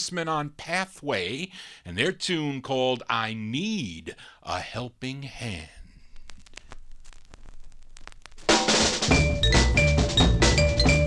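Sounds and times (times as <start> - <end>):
vinyl record clicks and pops: 5.9 - 9.1
soul record with drum-kit intro: 6.0 - 11.0.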